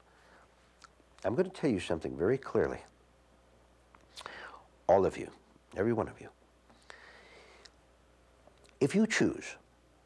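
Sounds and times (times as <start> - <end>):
soft in-breath: 0.0 - 0.6, 4.1 - 4.7, 6.7 - 7.8
man speaking: 1.2 - 2.9, 4.9 - 6.4, 8.8 - 9.6.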